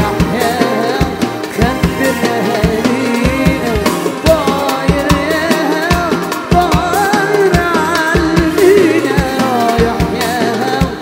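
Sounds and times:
darbuka drumming: 0:00.0 - 0:11.0
electric bass: 0:00.0 - 0:11.0
keyboard: 0:00.0 - 0:11.0
man singing: 0:00.0 - 0:11.0
violin: 0:00.0 - 0:11.0.

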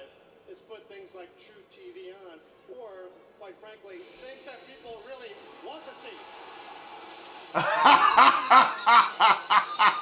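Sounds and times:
person laughing: 0:07.6 - 0:10.0.

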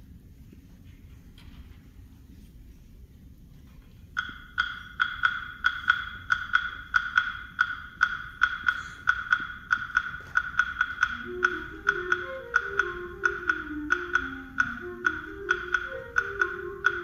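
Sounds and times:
wind instruments low melody: 0:02.0 - 0:17.0
wood block tapping: 0:04.2 - 0:17.0.

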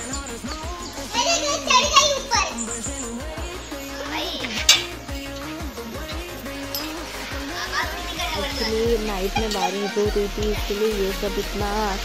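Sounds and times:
background music: 0:00.0 - 0:12.0
high-pitched voices calling out: 0:00.6 - 0:12.0.

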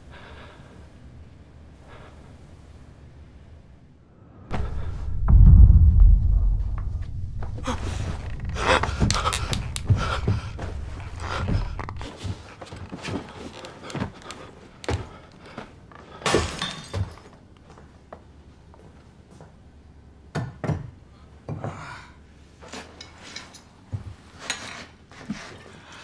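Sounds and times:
deep rumbling boom: 0:04.5 - 0:12.0.

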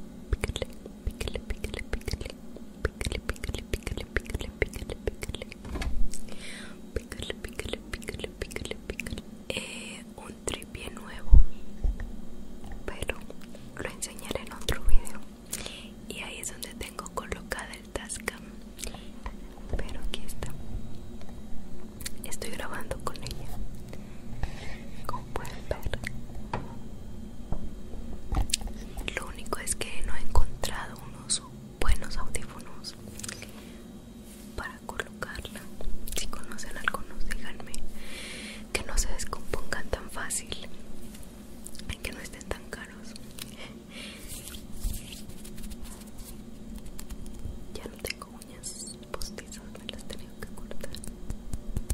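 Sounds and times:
woman whispering: 0:00.3 - 0:05.6, 0:06.9 - 0:11.4, 0:12.8 - 0:20.6, 0:22.1 - 0:23.6, 0:24.9 - 0:26.1, 0:28.6 - 0:33.6, 0:34.5 - 0:37.8, 0:38.7 - 0:40.7, 0:41.8 - 0:43.8, 0:47.7 - 0:51.1.

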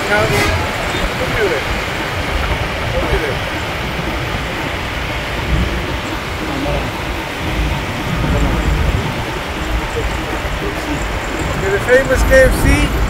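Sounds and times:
car engine and tyre noise: 0:00.0 - 0:13.0
street hum: 0:00.0 - 0:13.0.

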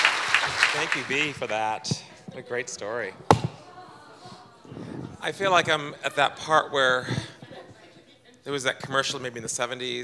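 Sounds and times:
microphone handling thump: 0:03.3 - 0:03.6.

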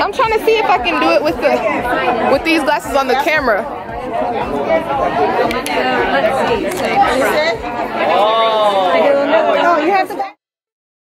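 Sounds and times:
people chattering: 0:00.0 - 0:10.4.

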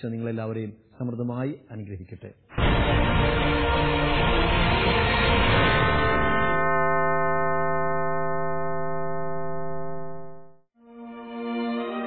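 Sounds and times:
tv theme music: 0:02.5 - 0:12.0.

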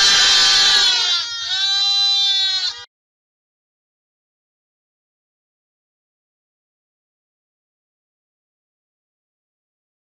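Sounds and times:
lambs bleating: 0:00.0 - 0:02.9
person imitating a bleat: 0:00.0 - 0:02.9.

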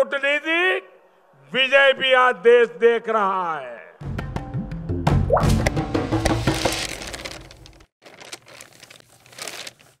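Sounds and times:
paper crumpling: 0:06.3 - 0:10.0.

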